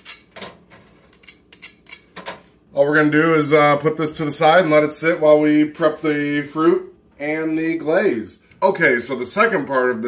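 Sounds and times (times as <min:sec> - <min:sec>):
knife scraping dry bread: 0:00.0 - 0:02.1.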